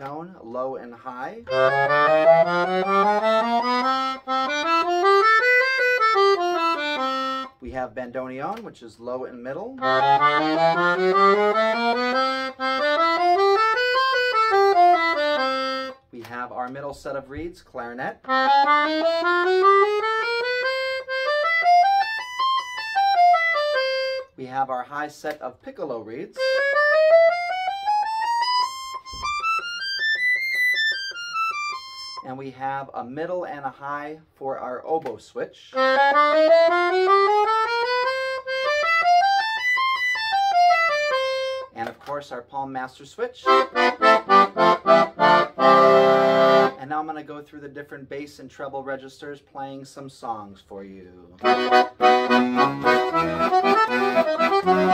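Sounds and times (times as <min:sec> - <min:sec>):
accordion single notes: 0:01.4 - 0:07.7, 0:09.7 - 0:16.8, 0:18.2 - 0:24.4, 0:26.4 - 0:32.4, 0:35.8 - 0:42.1, 0:43.4 - 0:46.8, 0:51.4 - 0:54.9.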